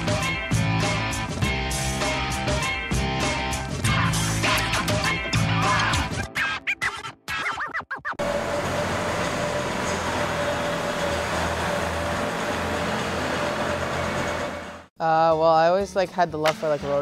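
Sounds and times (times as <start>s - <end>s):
choppy music: 0.0s - 7.0s
ice resurfacer engine hum: 8.2s - 14.9s.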